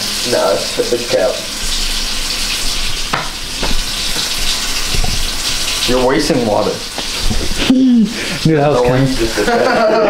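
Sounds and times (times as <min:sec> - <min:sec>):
water running: 0:00.0 - 0:10.0.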